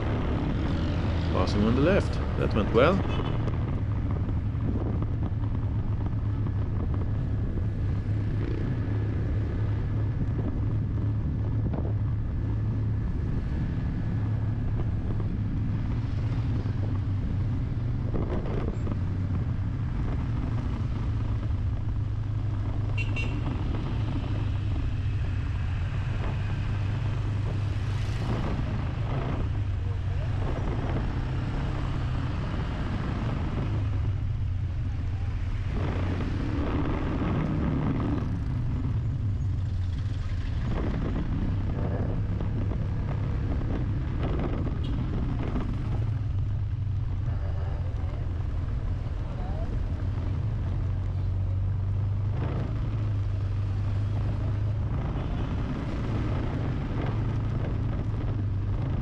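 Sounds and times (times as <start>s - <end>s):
car engine and road drone: 0.0s - 59.0s.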